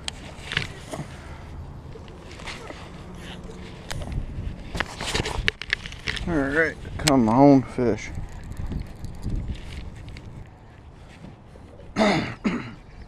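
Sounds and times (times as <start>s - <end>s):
fishing gear clicks and knocks: 0.0s - 1.2s, 1.9s - 10.6s.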